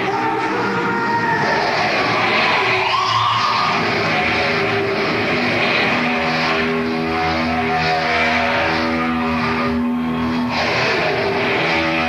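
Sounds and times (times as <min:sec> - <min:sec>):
heavy metal band playing live: 0:00.0 - 0:12.0
electric guitar notes ringing: 0:03.4 - 0:12.0.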